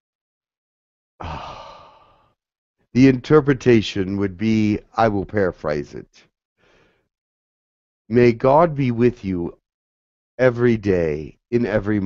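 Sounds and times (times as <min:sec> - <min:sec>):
man sighing: 0:01.2 - 0:02.3
man speaking: 0:03.0 - 0:06.2, 0:08.1 - 0:09.6, 0:10.4 - 0:12.0.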